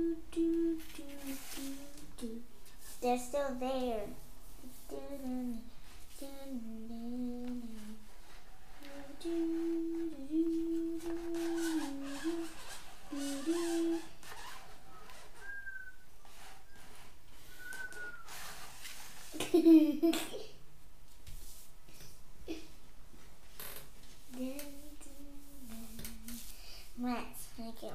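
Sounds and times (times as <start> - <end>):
child humming: 0.0 - 2.4, 4.8 - 8.1, 8.7 - 14.4, 24.3 - 26.5.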